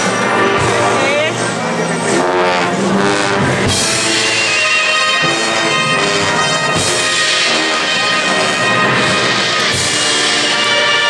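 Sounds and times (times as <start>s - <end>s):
brass band playing funeral march: 0.0s - 11.0s.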